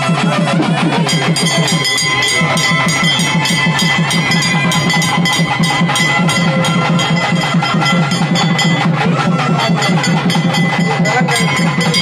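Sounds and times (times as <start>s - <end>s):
drums playing fast strokes: 0.0s - 12.0s
steady high tones: 0.0s - 12.0s.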